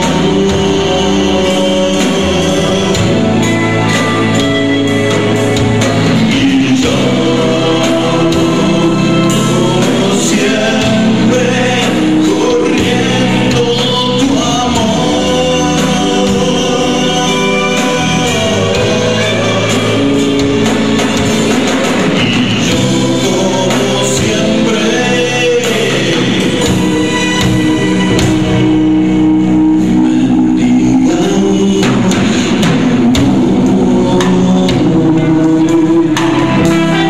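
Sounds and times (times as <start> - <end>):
bass guitar: 0.0 - 37.0
drum kit: 0.0 - 37.0
electric guitar: 0.0 - 37.0
person singing: 0.0 - 37.0.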